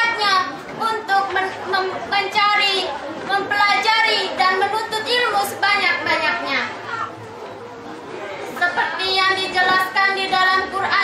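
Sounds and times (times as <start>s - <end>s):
hubbub of children's voices: 0.0s - 11.0s.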